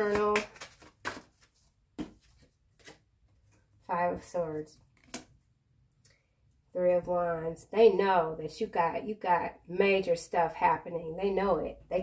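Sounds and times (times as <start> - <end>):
cards being handled: 0.0 - 3.7.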